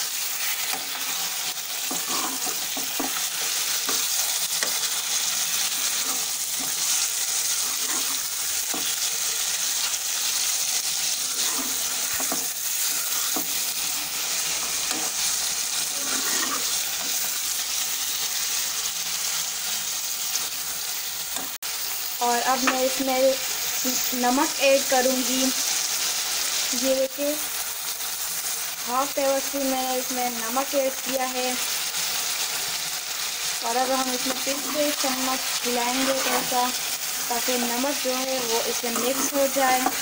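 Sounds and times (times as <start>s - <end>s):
meat sizzling in hot oil: 0.0s - 40.0s
spoon scraping metal pot: 0.4s - 4.8s, 5.7s - 9.0s, 11.0s - 17.3s, 33.9s - 36.8s, 38.3s - 40.0s.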